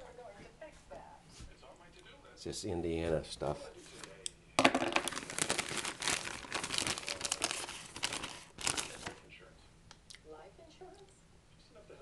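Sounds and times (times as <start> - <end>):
popcorn bag crinkling: 4.6 - 9.2.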